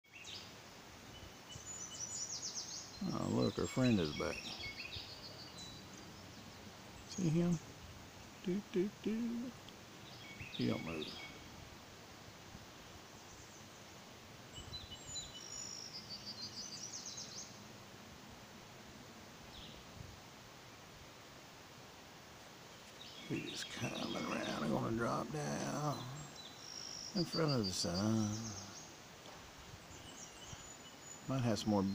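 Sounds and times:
birds chirping faintly: 0.0s - 31.9s
low outdoor background: 0.0s - 31.9s
soft background hiss: 0.1s - 31.9s
bird chirps and trills: 8.2s - 11.5s, 22.9s - 29.0s.

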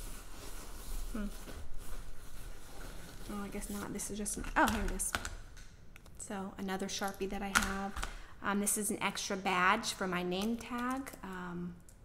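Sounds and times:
rummaging through a bag: 0.0s - 4.7s.

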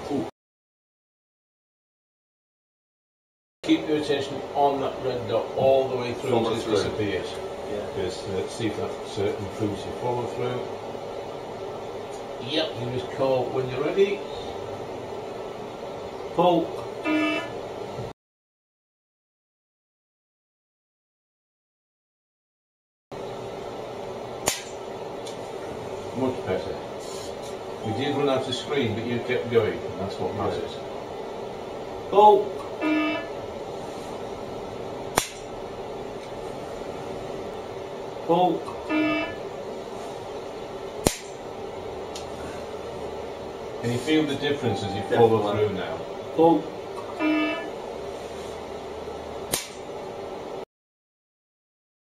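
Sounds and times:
room noise: 0.0s - 0.3s, 3.6s - 18.1s, 23.2s - 50.6s
faint low hum: 23.2s - 50.2s.

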